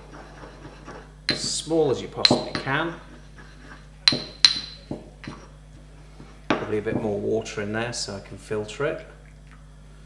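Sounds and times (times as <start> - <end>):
ceramic pestle clinking in mortar: 1.3 - 1.6, 2.2 - 3.0, 4.0 - 5.5.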